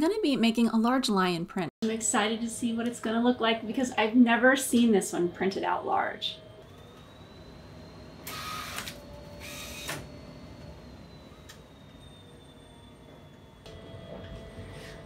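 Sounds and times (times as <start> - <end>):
faint steady whine: 2.1 - 15.0
inkjet printer mechanical passes: 4.7 - 15.0.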